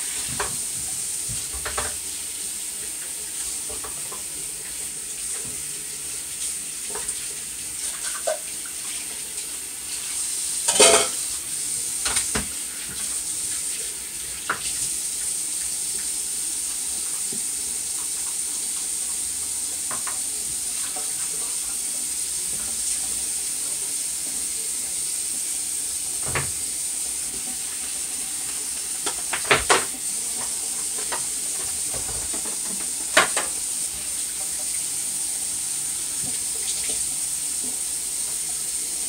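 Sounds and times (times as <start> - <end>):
faucet running into sink: 0.0 - 39.0
dishes clinking: 10.7 - 11.2.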